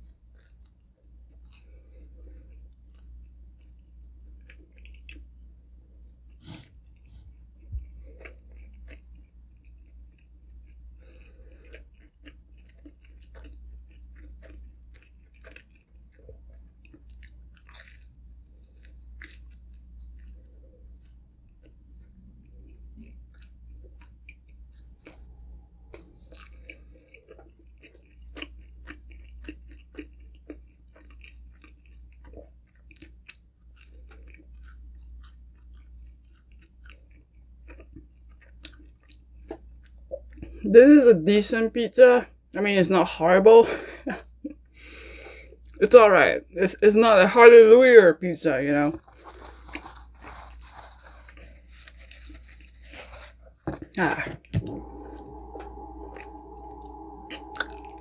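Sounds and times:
chewing pizza: 0:00.0 - 0:40.7, 0:48.7 - 0:56.4.

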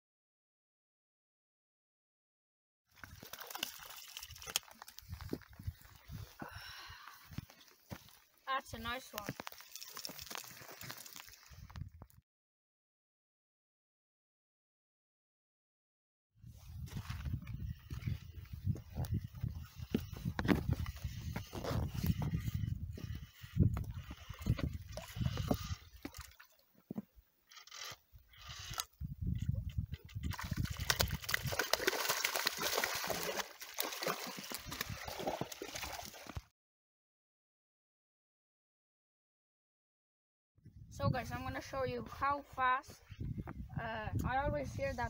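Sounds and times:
water lapping among rocks: 0:02.9 - 0:06.4, 0:09.2 - 0:11.7, 0:30.3 - 0:36.5
wind buffeting microphone: 0:05.0 - 0:06.6, 0:16.4 - 0:25.9, 0:29.0 - 0:31.7, 0:40.6 - 0:42.3, 0:42.9 - 0:45.0.

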